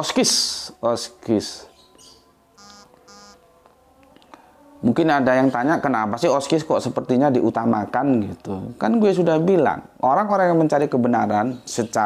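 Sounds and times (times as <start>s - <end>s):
short electronic beeps: 2.6s - 3.4s.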